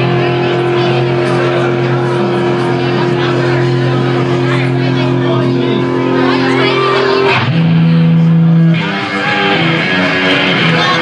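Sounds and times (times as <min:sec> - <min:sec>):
rock band holding distorted chord: 0:00.0 - 0:11.0.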